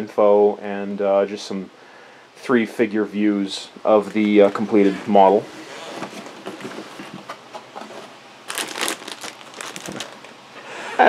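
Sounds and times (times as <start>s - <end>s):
plastic bags crinkling: 8.5s - 10.4s.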